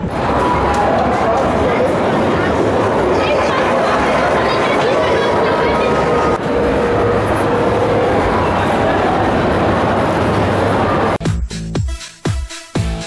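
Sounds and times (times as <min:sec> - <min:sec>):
people's voices: 0:00.0 - 0:11.2
ride car running on track: 0:00.0 - 0:11.2.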